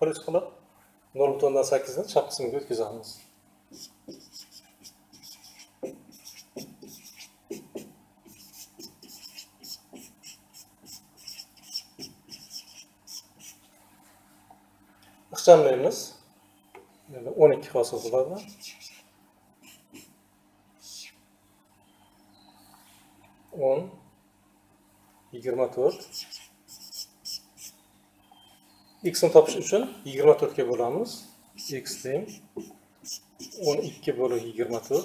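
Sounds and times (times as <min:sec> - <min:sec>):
whiteboard marker squeaking: 0:03.7 - 0:13.6, 0:18.0 - 0:20.1, 0:25.9 - 0:27.8, 0:31.6 - 0:35.0.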